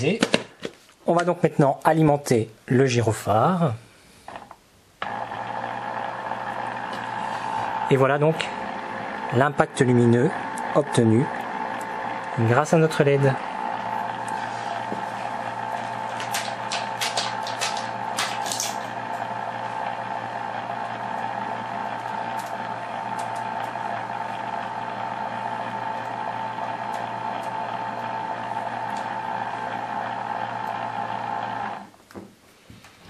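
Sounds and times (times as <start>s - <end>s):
electric motor whirring: 5.0s - 31.9s.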